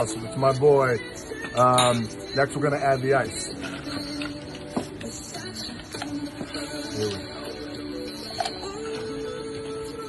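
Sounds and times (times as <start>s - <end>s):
music playing: 0.0s - 10.0s.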